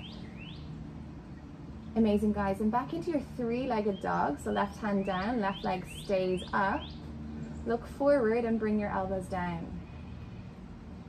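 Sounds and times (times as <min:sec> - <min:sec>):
songbird chirping: 0:00.0 - 0:10.7.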